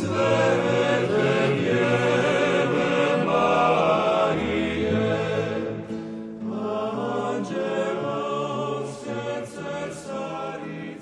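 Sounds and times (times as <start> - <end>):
choir singing slow chords: 0.0 - 11.0.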